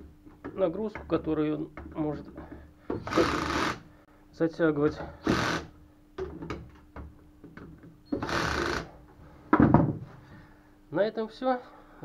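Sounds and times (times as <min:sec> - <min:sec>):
cordless drill running: 0:03.0 - 0:03.9, 0:05.2 - 0:05.7, 0:08.2 - 0:08.9.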